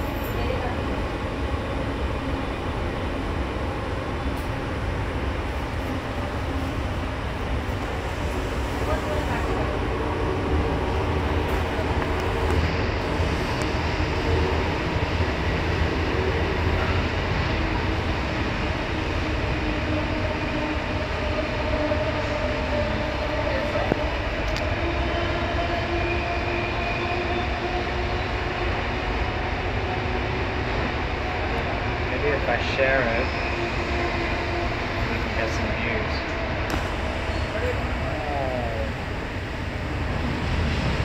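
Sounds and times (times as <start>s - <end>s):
train rumbling inside carriage: 0.0s - 41.0s.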